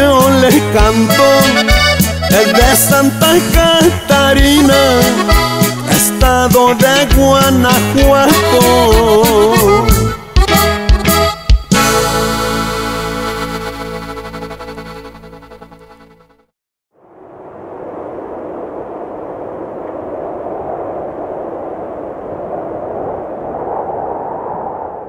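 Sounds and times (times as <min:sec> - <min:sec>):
band closing chord with accordion: 0:01.1 - 0:02.8, 0:04.8 - 0:06.0, 0:08.4 - 0:16.4
steady rushing noise: 0:17.0 - 0:25.0.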